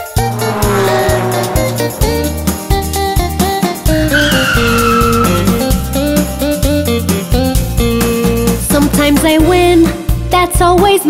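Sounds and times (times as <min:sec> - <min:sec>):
cartoon tyre screech: 0:00.1 - 0:03.2, 0:03.9 - 0:05.8.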